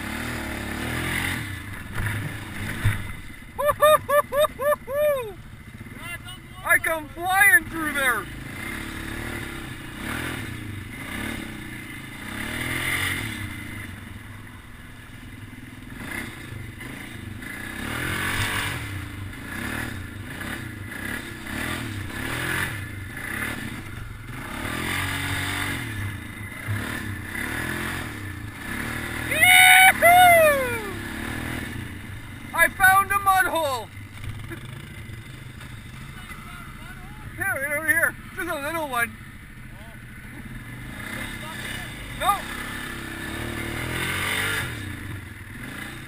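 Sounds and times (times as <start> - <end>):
atv engine running: 0.0 - 46.0.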